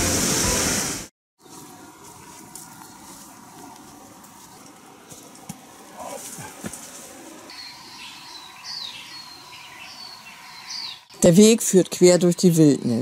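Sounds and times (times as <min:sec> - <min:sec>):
boots on dirt trail: 0:01.4 - 0:07.6.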